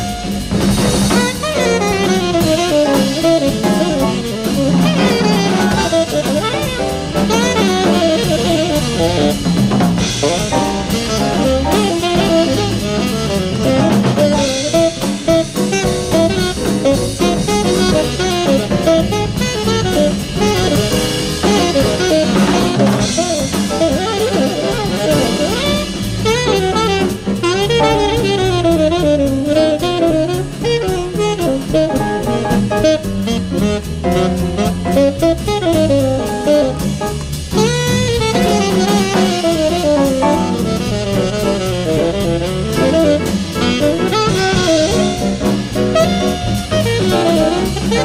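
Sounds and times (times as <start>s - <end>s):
bass: 0.0s - 48.0s
drum kit and cymbals: 0.0s - 48.0s
piano: 0.0s - 48.0s
saxophone improvising: 0.0s - 48.0s.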